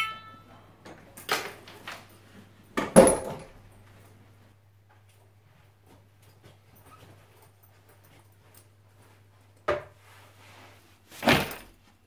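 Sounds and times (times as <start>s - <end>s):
low electrical hum: 0.0s - 12.0s
small movement sounds: 0.3s - 12.0s
faint footsteps: 3.7s - 10.5s.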